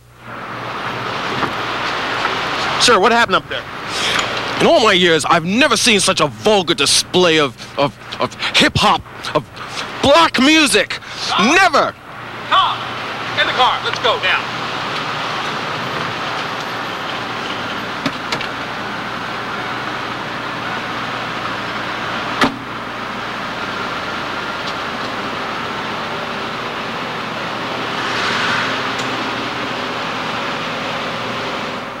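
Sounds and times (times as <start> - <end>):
city traffic noise: 0.0 - 32.0.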